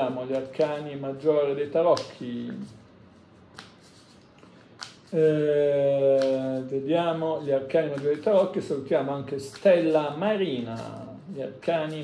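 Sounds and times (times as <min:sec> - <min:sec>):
cards being shuffled: 0:00.0 - 0:05.4, 0:06.0 - 0:12.0.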